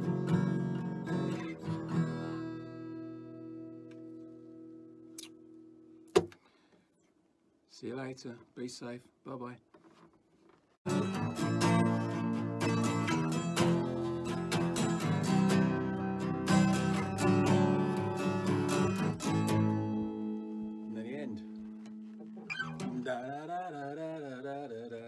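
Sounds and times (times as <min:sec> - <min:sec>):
acoustic guitar strumming: 0:00.0 - 0:05.1, 0:10.9 - 0:24.2.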